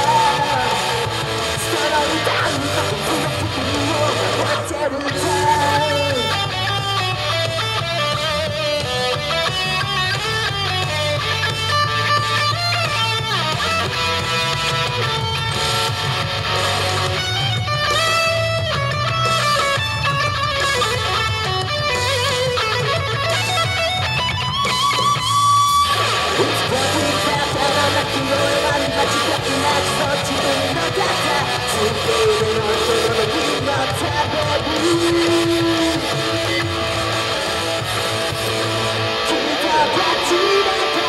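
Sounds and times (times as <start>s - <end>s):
person singing: 0.0s - 7.0s, 26.4s - 37.6s, 39.2s - 41.0s
electric guitar lead with string bends: 0.0s - 41.0s
rock backing music: 0.0s - 41.0s.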